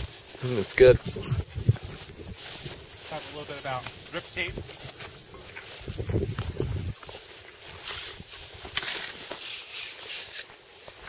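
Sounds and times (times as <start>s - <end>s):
wind rumbling on microphone: 0.0s - 3.1s, 3.8s - 8.7s
footsteps brushing through tall grass: 0.0s - 11.0s.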